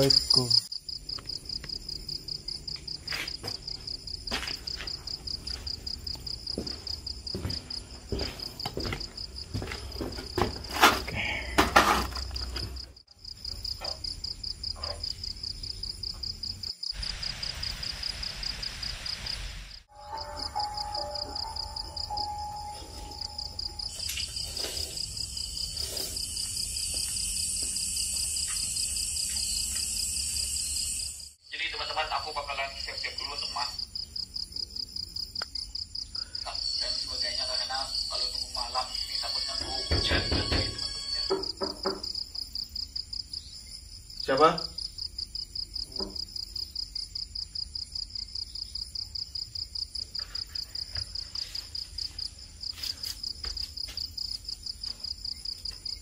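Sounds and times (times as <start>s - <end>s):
crickets trilling: 0.0s - 56.0s.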